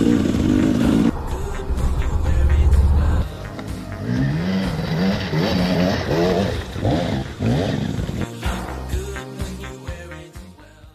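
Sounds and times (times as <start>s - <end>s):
motorcycle engine revving: 0.0s - 1.1s, 2.3s - 8.4s.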